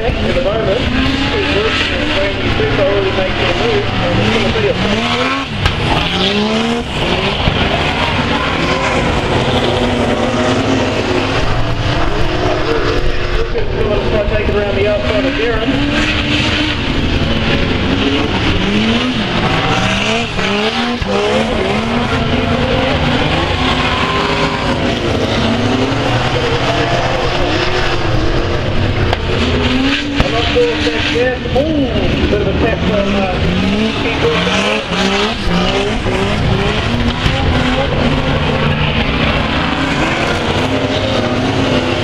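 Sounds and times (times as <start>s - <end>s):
constant drone of engines: 0.0s - 42.0s
race car engines revving: 0.0s - 42.0s.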